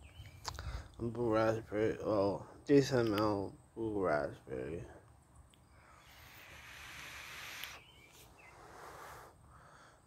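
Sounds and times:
soft exhale: 0:05.7 - 0:07.8, 0:08.4 - 0:10.0
airy hiss of vape draw: 0:05.9 - 0:09.4.

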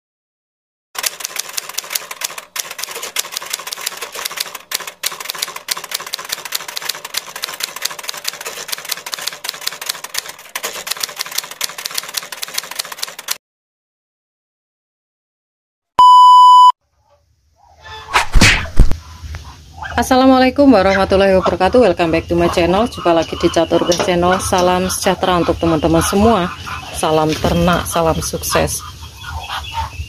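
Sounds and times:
keyboard typing clicks: 0:01.0 - 0:13.4.

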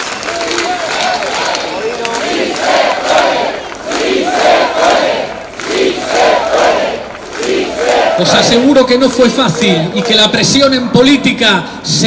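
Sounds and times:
crowd chanting in unison: 0:00.6 - 0:08.6.

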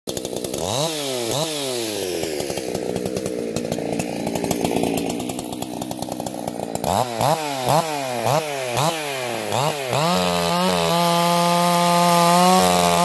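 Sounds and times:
chainsaw revving and idling: 0:00.1 - 0:13.0.

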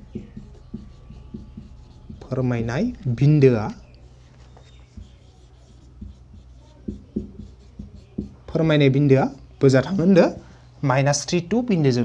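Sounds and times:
marker scratching on whiteboard: 0:00.0 - 0:08.6.

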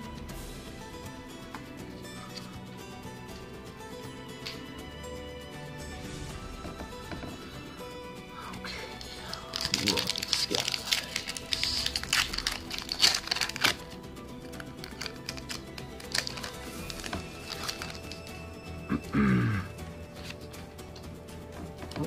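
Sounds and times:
background music: 0:00.0 - 0:22.0
cards being handled: 0:08.7 - 0:18.5
foil wrapper crinkling and tearing: 0:08.8 - 0:18.4.

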